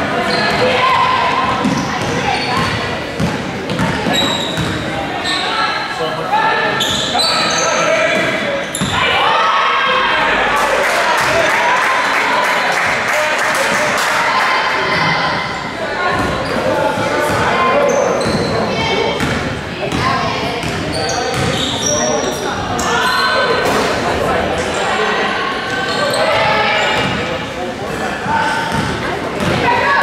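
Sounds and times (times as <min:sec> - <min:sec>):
sneakers squeaking: 0:00.1 - 0:05.9, 0:06.7 - 0:09.2, 0:16.0 - 0:24.0, 0:25.7 - 0:30.0.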